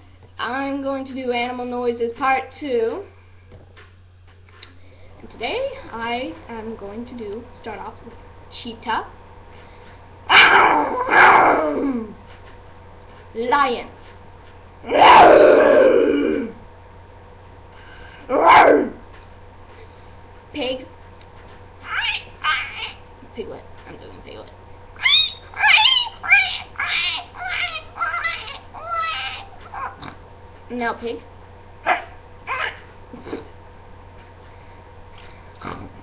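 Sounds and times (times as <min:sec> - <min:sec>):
girl imitating lion roar: 0:10.5 - 0:12.2, 0:14.8 - 0:16.6, 0:18.3 - 0:19.0.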